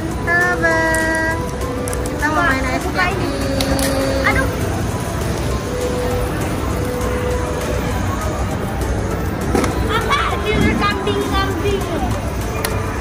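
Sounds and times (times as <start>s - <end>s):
background music: 0.0s - 13.0s
distant voices: 0.0s - 13.0s
shopping mall crowd noise: 0.0s - 13.0s.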